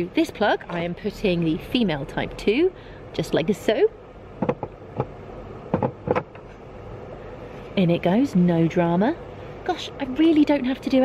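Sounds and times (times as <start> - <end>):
low background rumble: 0.0 - 11.0
plastic connector knocks and clicks: 4.4 - 5.1, 5.7 - 6.4.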